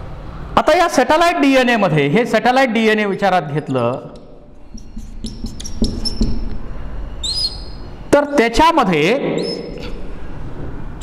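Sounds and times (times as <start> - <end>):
marker squeaking on whiteboard: 3.5 - 8.0, 9.4 - 10.1.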